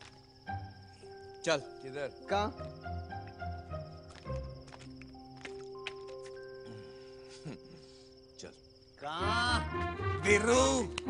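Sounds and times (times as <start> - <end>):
crickets chirring: 0.0 - 11.0
soft background score: 0.0 - 11.0.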